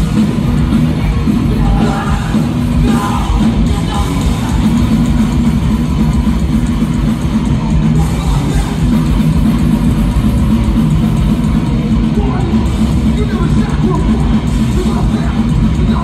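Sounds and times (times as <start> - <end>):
bass guitar: 0.0 - 16.0
distorted electric guitars: 0.0 - 16.0
drum kit: 0.0 - 16.0.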